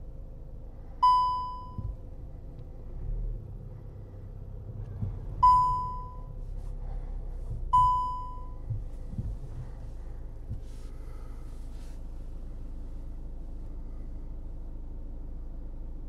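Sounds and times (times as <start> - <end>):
engine and cabin hum: 0.0 - 16.0
car warning chime ding: 1.0 - 2.0, 5.4 - 6.3, 7.7 - 8.7.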